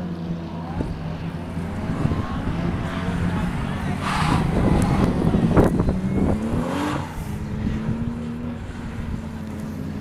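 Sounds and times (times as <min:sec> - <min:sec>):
car engine running hard: 0:00.0 - 0:10.0.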